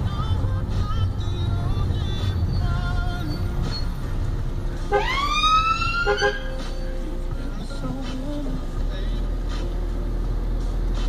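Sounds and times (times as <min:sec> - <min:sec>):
low rumble of car on road: 0:00.0 - 0:11.0
electronic emergency siren: 0:04.9 - 0:06.5.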